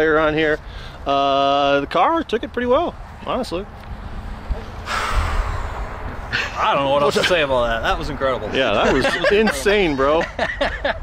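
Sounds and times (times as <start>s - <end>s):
wind rumble on microphone: 2.9s - 6.4s
person exhaling breathily: 4.8s - 6.6s.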